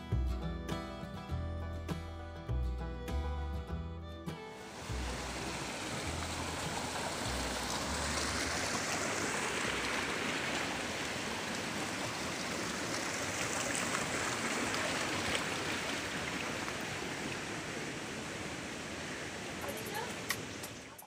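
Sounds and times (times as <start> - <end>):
water rushing along channel: 4.3 - 21.0.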